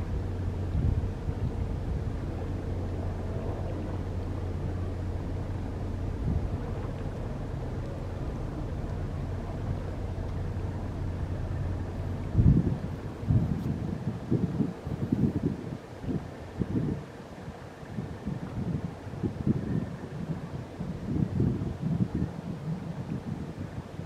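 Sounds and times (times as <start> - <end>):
boat engines droning: 0.0 - 24.0
faint steady tone: 0.0 - 24.0
wind gusts on microphone: 0.0 - 24.0.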